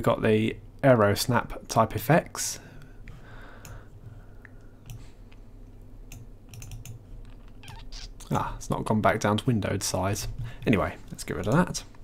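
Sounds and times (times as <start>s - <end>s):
computer mouse clicks: 4.4s - 5.1s, 6.1s - 7.8s.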